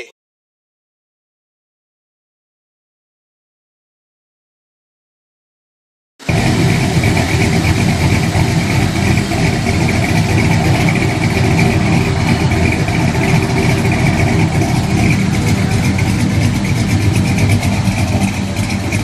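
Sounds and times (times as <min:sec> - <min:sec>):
car engine idling: 0:06.2 - 0:19.0.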